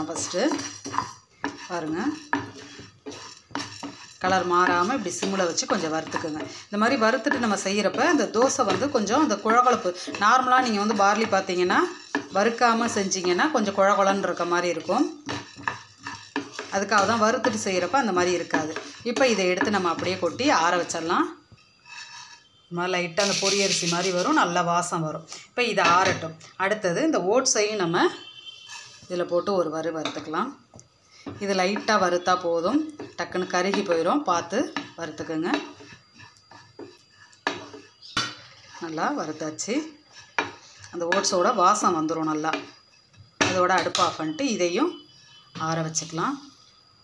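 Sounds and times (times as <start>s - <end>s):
spatula scraping a pan: 0.0s - 24.6s, 27.4s - 46.9s.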